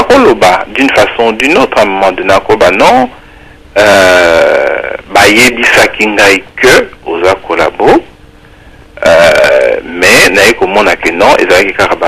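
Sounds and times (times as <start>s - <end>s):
man speaking: 0.0s - 3.2s, 3.8s - 8.1s, 9.0s - 12.0s
faint background hum: 0.0s - 12.0s.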